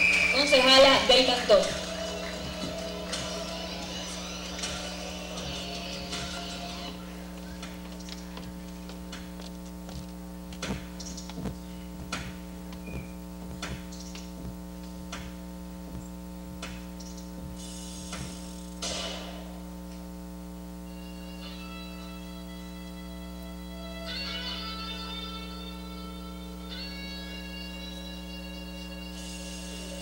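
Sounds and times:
electrical mains hum: 0.0s - 30.0s.

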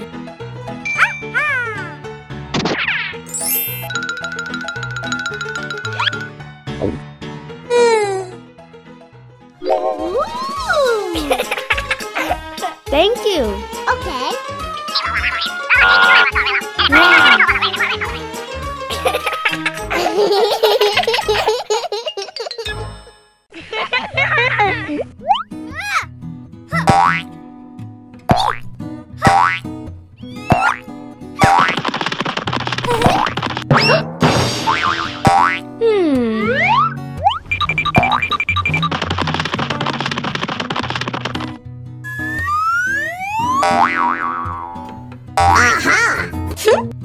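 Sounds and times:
cartoon background music: 0.0s - 8.7s, 9.4s - 23.1s, 24.2s - 27.4s, 28.3s - 47.0s
comic boings: 14.8s - 17.8s, 33.1s - 35.6s, 42.1s - 45.9s
sharp hits: 33.6s - 35.4s
whistle-like pitch slides: 42.1s - 43.6s.

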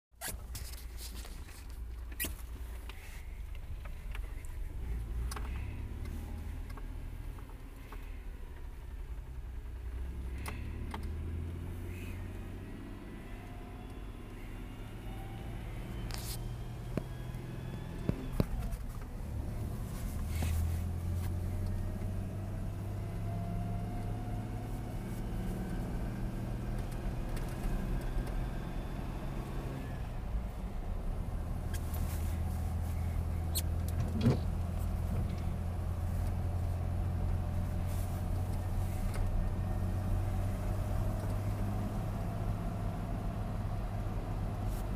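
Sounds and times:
gear shift tick: 1.3s - 8.7s, 10.4s - 11.2s
car engine accelerating: 2.1s - 44.9s.

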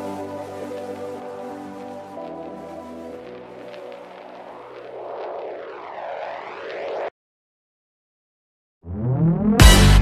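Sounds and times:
synth pad tones: 0.0s - 7.1s
whooshing noise riser: 3.2s - 7.1s.

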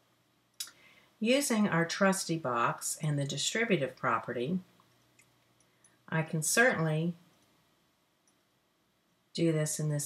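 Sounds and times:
person speaking: 6.1s - 7.3s.

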